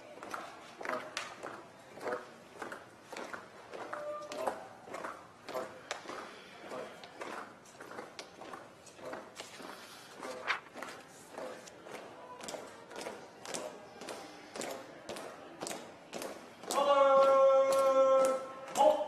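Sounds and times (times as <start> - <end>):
faint shuffling: 0.0 - 16.6
marching footsteps on hard floor: 0.2 - 19.0.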